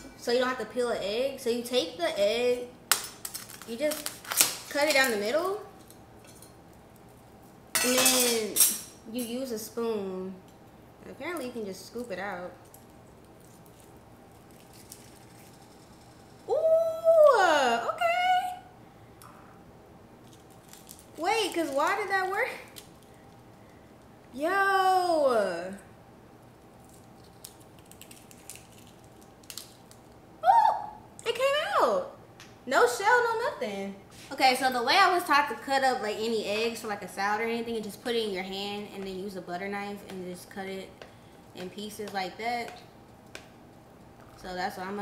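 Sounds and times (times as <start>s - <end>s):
woman's voice: 0.0s - 2.7s, 7.8s - 10.4s, 11.0s - 12.6s, 16.5s - 18.7s, 21.2s - 22.7s, 24.3s - 25.9s, 30.4s - 41.0s, 41.6s - 42.8s, 44.4s - 45.0s.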